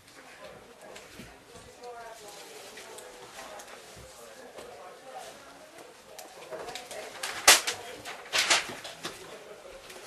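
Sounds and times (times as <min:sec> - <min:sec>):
paper sheets rustling: 0:06.8 - 0:09.3.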